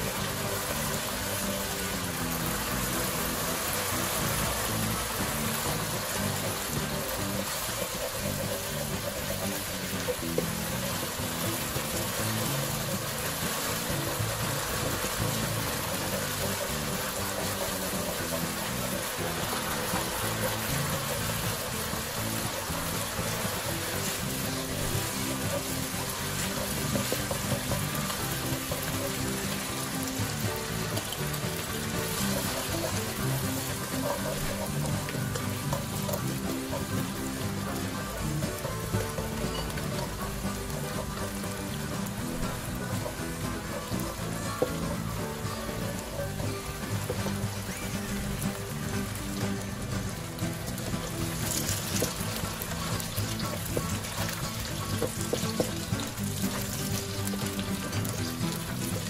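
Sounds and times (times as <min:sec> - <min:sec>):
background music: 0:00.0 - 0:59.0
paste sizzling in oil in a wok: 0:00.0 - 0:59.0.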